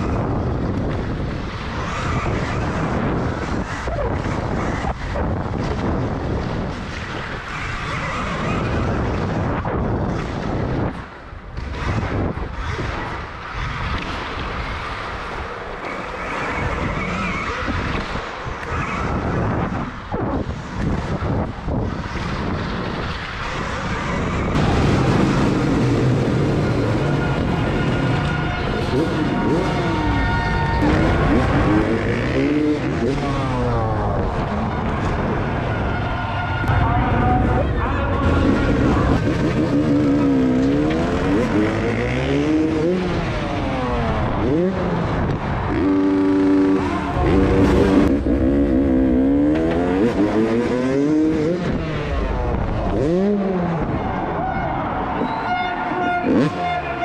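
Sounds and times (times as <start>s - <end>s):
motorbike engine revving: 24.5s - 36.0s, 36.6s - 54.2s, 56.2s - 57.0s.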